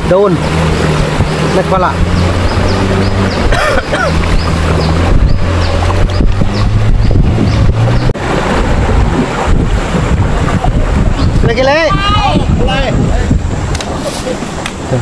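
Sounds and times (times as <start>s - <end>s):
outboard motor running: 0.0s - 15.0s
river water rushing: 0.0s - 15.0s
wind on microphone: 0.0s - 15.0s.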